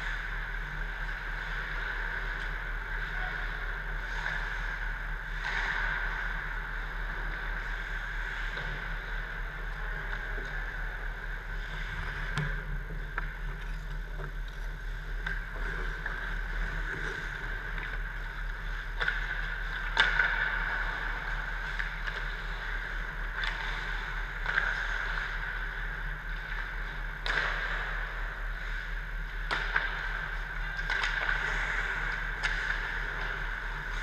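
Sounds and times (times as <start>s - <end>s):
low rink hum: 0.0s - 34.0s
hockey sticks and puck clacking: 15.0s - 25.4s, 26.3s - 28.0s, 29.4s - 34.0s.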